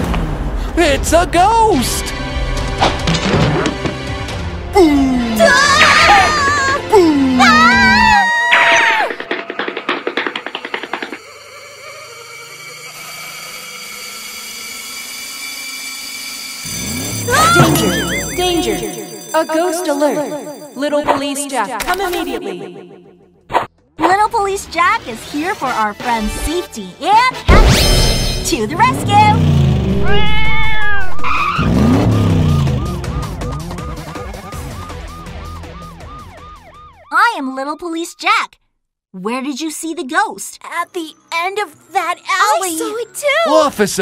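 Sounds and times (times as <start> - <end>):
siren whooping: 7.2 - 9.2, 11.2 - 19.6, 28.8 - 38.2
eerie suspense drone: 9.2 - 23.5, 27.6 - 36.7
engine revving up: 16.6 - 18.6, 28.4 - 34.7
tire screech: 16.6 - 18.6, 28.4 - 35.1.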